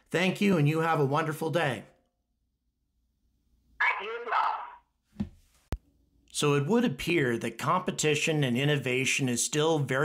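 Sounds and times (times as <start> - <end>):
person speaking: 3.8 - 4.8
soft thump: 5.2 - 5.4.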